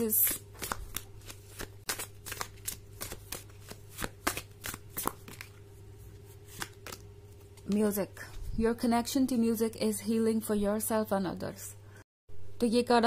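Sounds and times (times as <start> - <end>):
cards being shuffled: 0.0 - 7.9.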